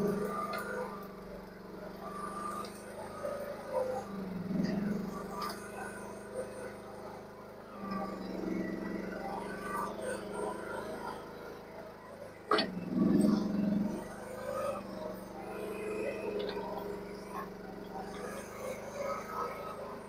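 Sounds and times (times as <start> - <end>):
excavator diesel engine: 0.0 - 20.0.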